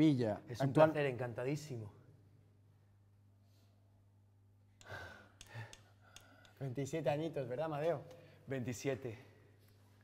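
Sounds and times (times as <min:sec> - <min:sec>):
faint clicks: 0:04.8 - 0:06.6.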